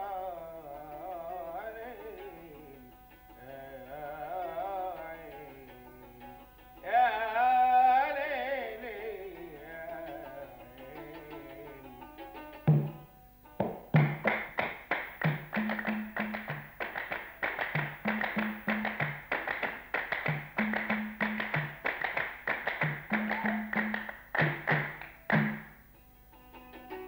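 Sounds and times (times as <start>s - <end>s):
sharp claps: 13.6s - 25.8s.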